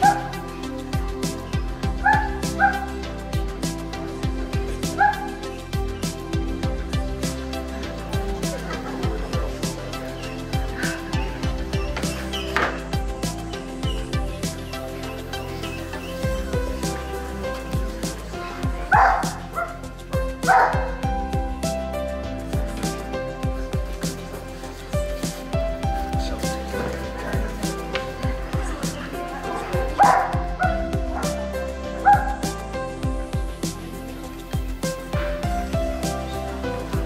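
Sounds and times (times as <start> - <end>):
dog barking: 0.0 - 0.4, 2.0 - 2.9, 5.0 - 5.4, 18.9 - 19.8, 20.4 - 21.0, 29.3 - 31.4, 32.0 - 32.5
background music with steady beat: 0.0 - 37.0.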